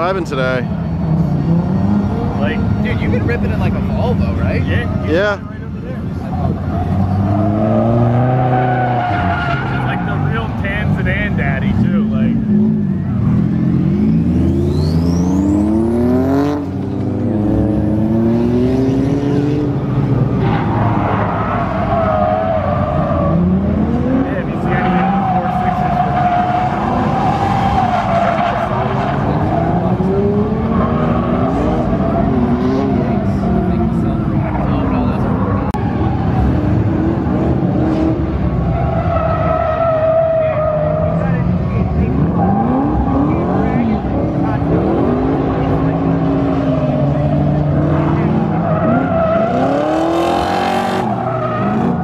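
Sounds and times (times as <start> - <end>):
car engine revving: 0.0 - 52.0.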